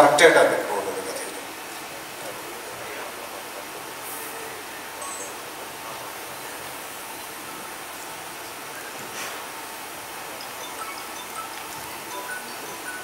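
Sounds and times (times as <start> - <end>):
steady hall room noise hiss: 0.0 - 13.0
faint high-pitched sounds: 1.0 - 9.0, 9.7 - 13.0.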